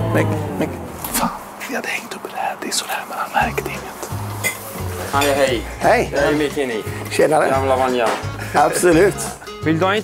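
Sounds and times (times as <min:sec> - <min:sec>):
man speaking softly: 0:01.2 - 0:04.0.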